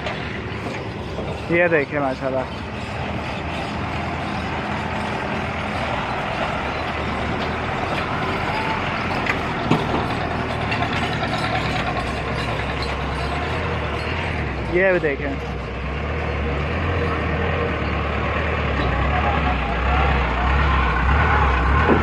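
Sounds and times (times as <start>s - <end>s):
rattling mechanical clatter: 0.0s - 16.0s
truck engine running: 0.0s - 22.0s.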